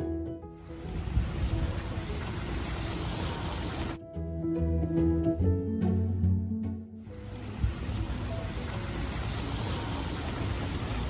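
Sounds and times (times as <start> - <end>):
background string music: 0.0 - 11.0
steady outdoor rushing noise: 0.6 - 4.0, 7.1 - 11.0.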